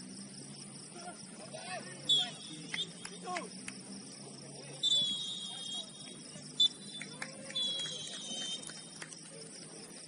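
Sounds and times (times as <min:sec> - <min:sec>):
referee's whistle blasts: 0:02.0 - 0:03.2, 0:04.8 - 0:08.8.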